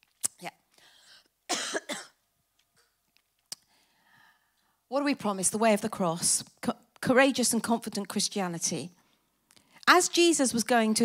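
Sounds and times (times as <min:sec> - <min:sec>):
woman coughing: 0:01.5 - 0:02.2.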